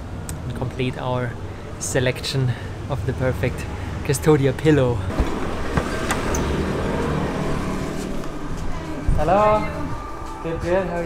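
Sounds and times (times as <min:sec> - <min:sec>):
road vehicle rumble and hiss: 0:00.0 - 0:11.0
traffic noise: 0:00.0 - 0:11.0.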